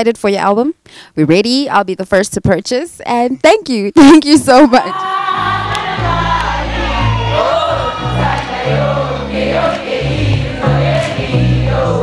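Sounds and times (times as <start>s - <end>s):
voices singing together: 4.9s - 12.0s
held bass notes: 5.3s - 12.0s.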